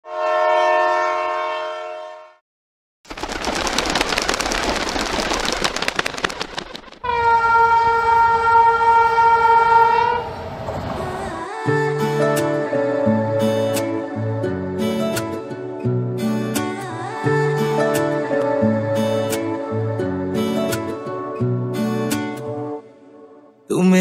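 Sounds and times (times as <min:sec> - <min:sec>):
train horn: 0:00.0 - 0:02.4, 0:07.0 - 0:10.6
plucked guitar music: 0:11.9 - 0:22.8.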